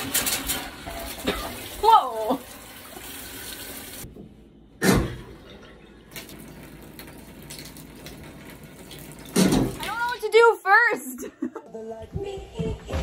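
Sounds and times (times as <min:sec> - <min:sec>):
tap water running into sink: 0:00.0 - 0:04.0, 0:06.1 - 0:10.3.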